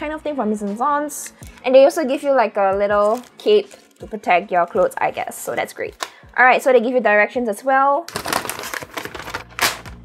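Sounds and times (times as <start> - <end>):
paper crinkling and rustling: 3.0 - 5.1, 8.1 - 10.0.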